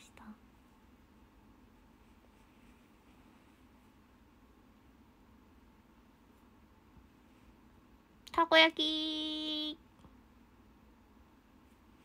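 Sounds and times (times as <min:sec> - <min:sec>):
soft whisper: 0:00.0 - 0:00.6.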